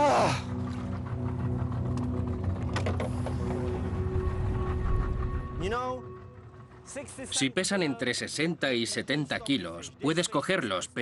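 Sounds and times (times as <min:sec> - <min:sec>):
low rumble of boat: 0:00.0 - 0:07.3
sustained background music: 0:00.0 - 0:11.0.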